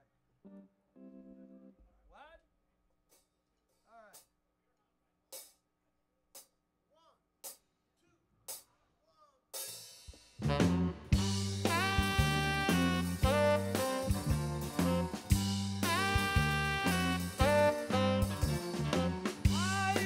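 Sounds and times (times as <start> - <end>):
blues band playing: 10.4 - 20.0
tenor saxophone: 10.4 - 20.0.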